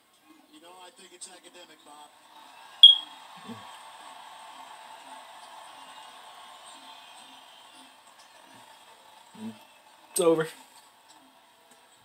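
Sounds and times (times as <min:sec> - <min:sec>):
arena crowd hubbub: 0:00.0 - 0:12.0
faint commentary: 0:00.0 - 0:12.0.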